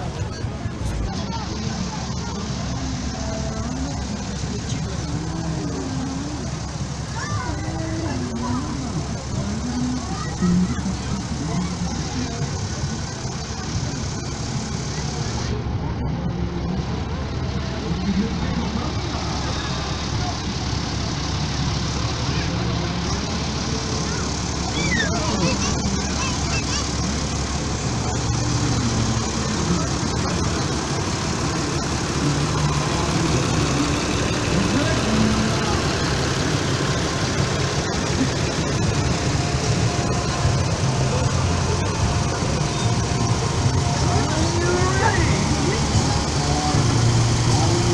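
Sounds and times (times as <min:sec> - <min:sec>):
people talking: 0:00.0 - 0:47.9
tractor diesel engine running: 0:00.0 - 0:47.9.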